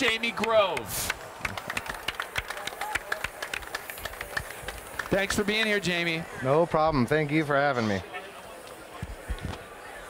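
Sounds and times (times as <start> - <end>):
light applause: 0.0 - 6.3.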